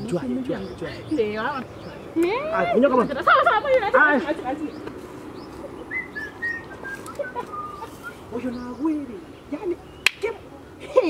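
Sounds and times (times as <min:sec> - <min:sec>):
hands snapping: 0:10.0 - 0:10.3.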